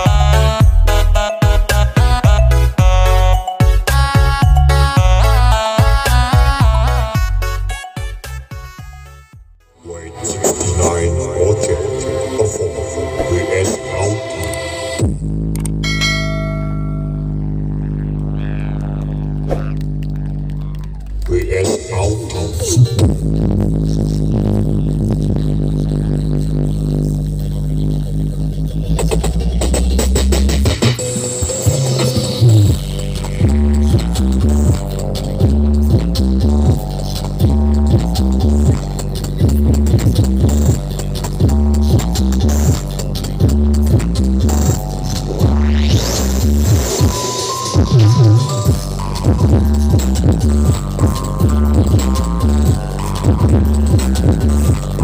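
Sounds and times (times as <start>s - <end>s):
electronic music on loud speakers: 0.0s - 55.0s.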